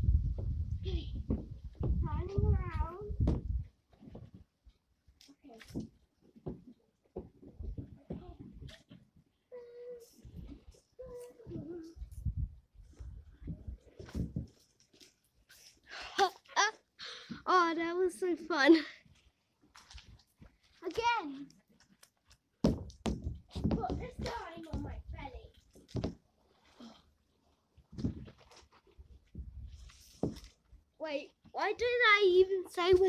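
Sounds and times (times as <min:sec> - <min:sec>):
low rumble with knocks: 0:00.0 - 0:03.7
child's wavering wordless voice: 0:02.0 - 0:03.2, 0:09.5 - 0:12.2
child vocal sound: 0:09.5 - 0:10.2
low bumps on plastic slide: 0:22.6 - 0:25.1.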